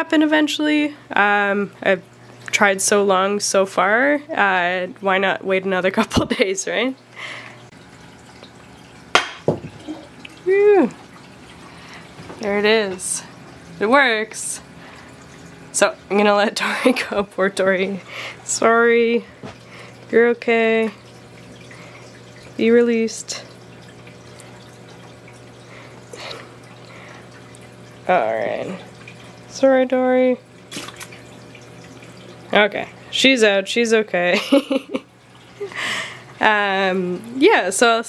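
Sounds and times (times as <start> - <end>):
low even hum: 0.0 - 38.0
water splashing: 7.2 - 33.2
low water hiss: 34.3 - 38.0.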